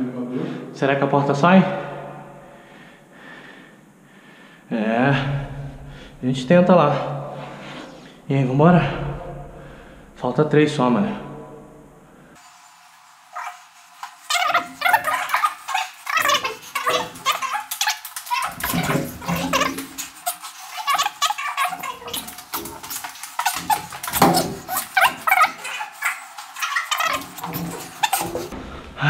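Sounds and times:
rapid knocks and scrapes: 12.4s - 29.0s
squeaky sped-up voices: 13.3s - 28.5s.

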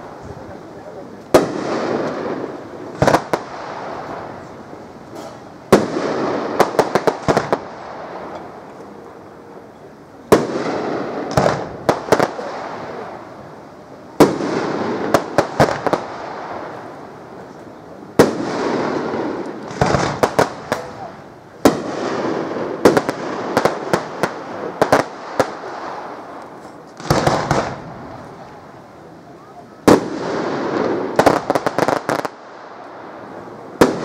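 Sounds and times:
sharp crackling cracks: 1.0s - 9.3s, 10.2s - 29.0s, 29.8s - 34.0s
firework shells bursting: 18.2s - 28.7s.

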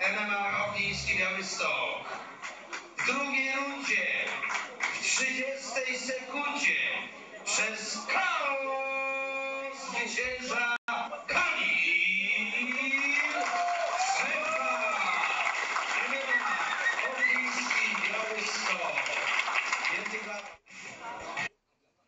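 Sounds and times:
man speaking on a recording: 0.0s - 2.2s, 5.0s - 13.3s.

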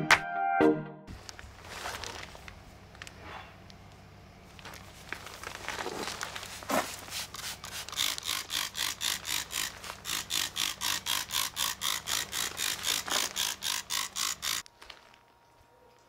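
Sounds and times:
spray bottle squirting: 6.5s - 14.6s.

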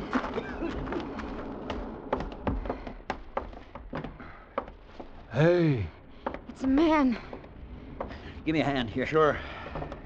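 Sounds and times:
footsteps on wooden boards: 0.0s - 8.5s.

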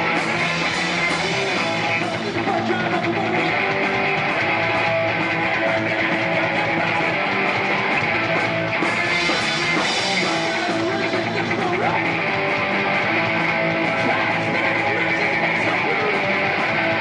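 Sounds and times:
drum kit: 0.0s - 17.0s
electric bass: 0.0s - 17.0s
electric guitar: 0.0s - 17.0s.

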